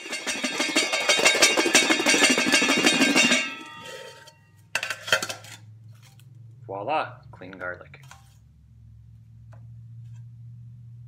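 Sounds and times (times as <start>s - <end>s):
garlic rattling in metal bowls: 0.0s - 4.2s
metal bowls ringing: 0.0s - 5.3s
metal bowls clinking: 0.0s - 5.6s.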